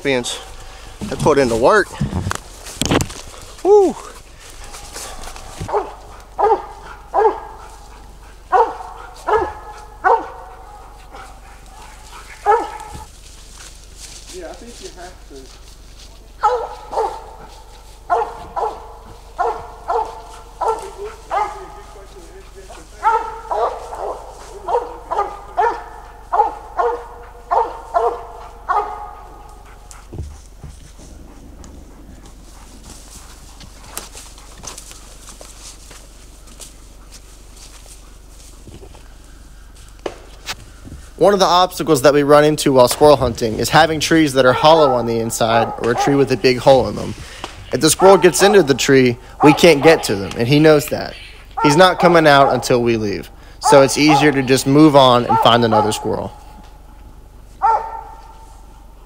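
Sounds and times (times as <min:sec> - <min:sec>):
dog barking: 0:04.7 - 0:13.1, 0:16.4 - 0:30.4, 0:44.5 - 0:46.4, 0:47.9 - 0:50.3, 0:51.6 - 0:52.8, 0:53.6 - 0:54.6, 0:55.2 - 0:56.6, 0:57.6 - 0:58.5.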